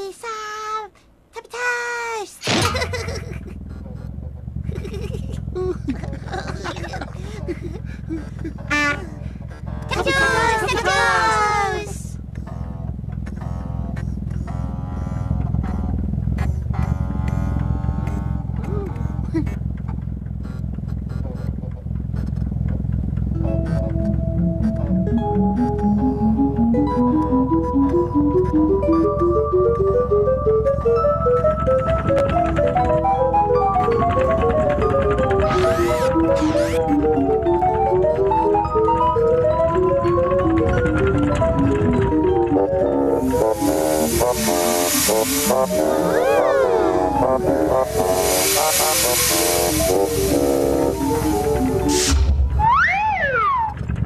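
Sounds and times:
plucked notes tune: 22.7 - 54.0
melodic background music: 23.4 - 52.1
short rising squeaks: 31.2 - 37.0
toy machine rumbling and clicking: 31.4 - 52.0
long held tones: 42.7 - 52.0
steam-like hiss: 43.2 - 52.3.

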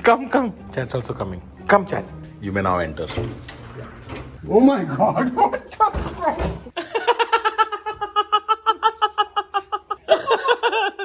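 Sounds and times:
high-pitched laughter: 6.8 - 11.0.

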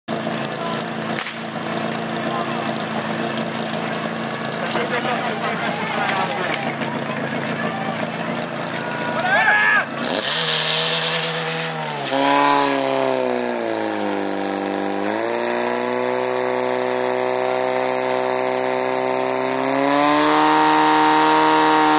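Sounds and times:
pump engine running: 0.1 - 21.9
people shouting: 4.8 - 10.1.

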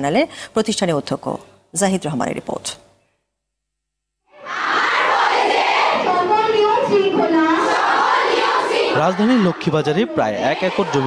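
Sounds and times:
women's voices in unison: 4.4 - 9.3.

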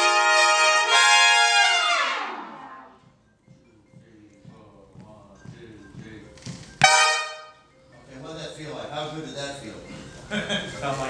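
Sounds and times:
trumpet section playing big-band: 0.0 - 3.0, 6.8 - 7.6.

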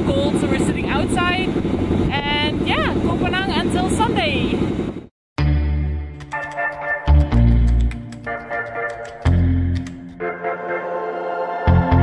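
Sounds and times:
boat engine droning: 0.0 - 5.1
woman talking: 2.1 - 4.6.

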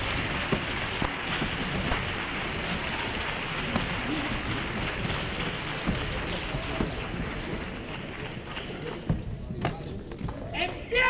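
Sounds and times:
audience applauding: 0.0 - 9.6.

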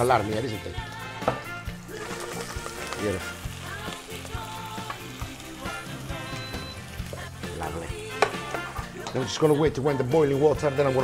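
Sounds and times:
background music: 0.0 - 11.0
garlic sizzling in oil: 0.0 - 11.0.

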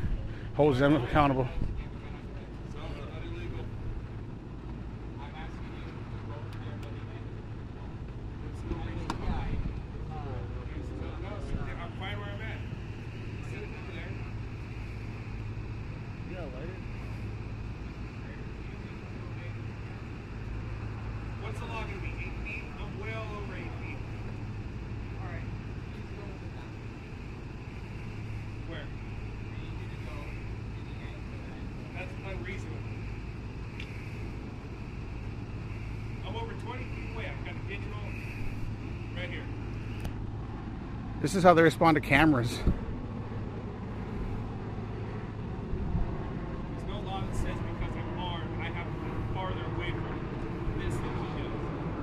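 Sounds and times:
faint indistinct voices: 0.0 - 41.8
vehicle engines idling: 0.0 - 52.0.

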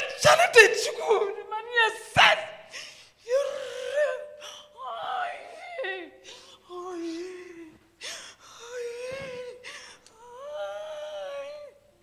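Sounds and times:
woman gasping: 9.5 - 10.2.

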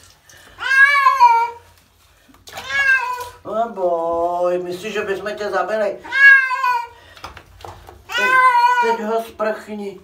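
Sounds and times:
cat meowing: 0.6 - 1.6, 2.5 - 3.4, 6.0 - 7.0, 8.1 - 9.0.

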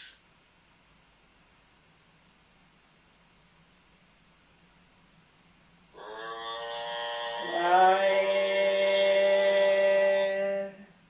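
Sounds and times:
person chanting a held tone: 6.0 - 10.9.

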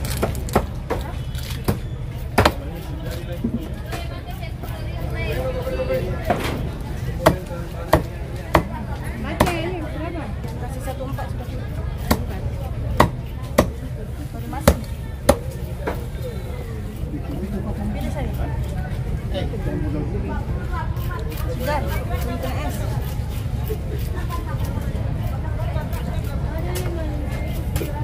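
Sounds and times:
cleaver chopping on wooden block: 2.4 - 2.6, 7.2 - 8.8, 12.1 - 12.3, 13.0 - 13.8.

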